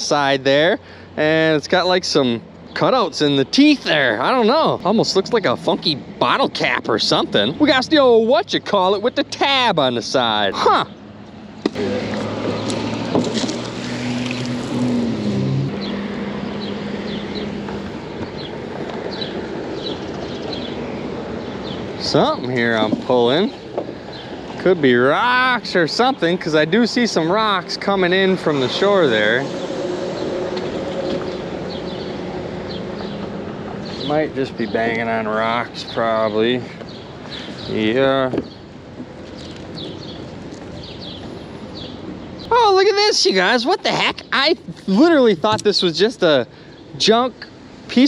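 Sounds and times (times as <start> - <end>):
boat motor humming: 1.0 - 47.2.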